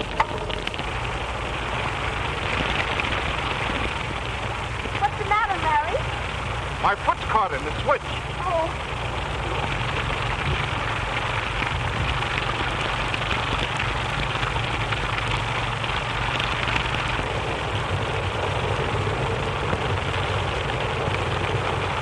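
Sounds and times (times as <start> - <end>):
heavy rain: 0.0 - 22.0
low rumble: 0.0 - 22.0.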